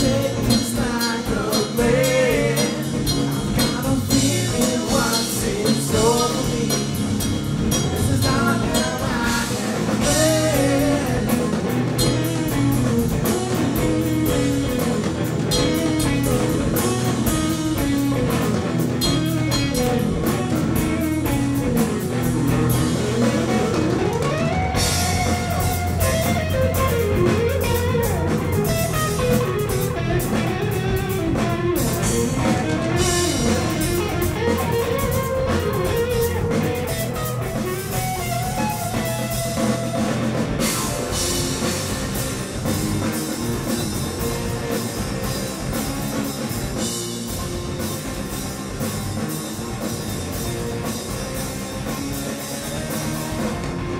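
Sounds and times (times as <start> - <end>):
live rock band playing: 0.0 - 53.9
bass guitar low note: 5.9 - 53.9.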